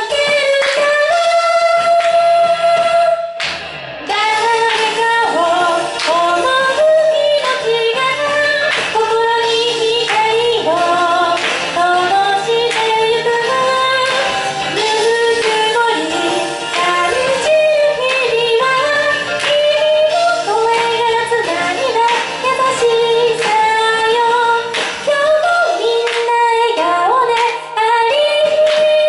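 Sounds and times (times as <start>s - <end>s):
woman singing into microphone: 0.0s - 3.4s, 4.1s - 29.0s
music with steady beat: 0.0s - 29.0s.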